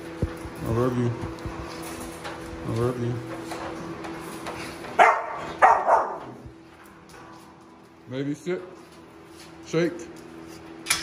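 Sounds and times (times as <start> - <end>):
dog barking: 5.0 - 6.4.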